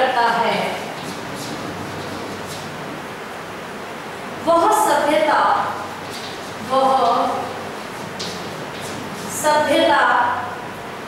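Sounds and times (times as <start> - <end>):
person speaking: 0.0 - 2.8, 4.4 - 10.6
background hiss: 0.0 - 11.0.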